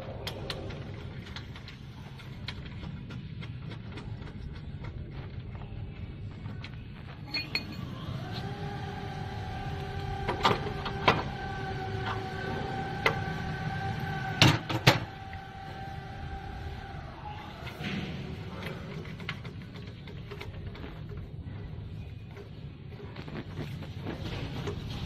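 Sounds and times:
steady background tone: 0.0 - 25.0.

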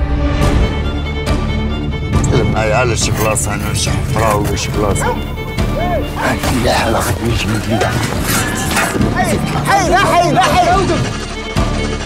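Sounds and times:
trailer music: 0.0 - 12.0
man's voice: 2.2 - 11.2
dogs barking and yelping: 4.8 - 11.2.

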